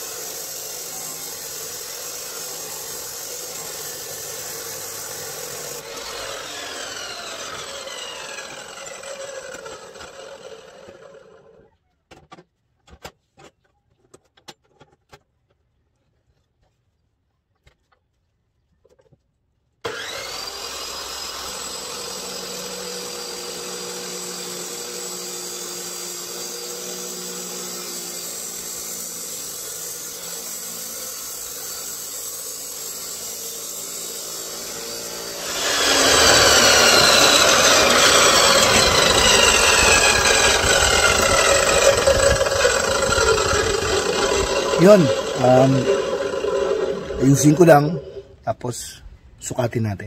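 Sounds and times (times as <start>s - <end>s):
cut-off saw motor whine: 0.0s - 11.4s, 19.9s - 48.4s
abrasive disc grinding steel pipe: 21.7s - 48.4s.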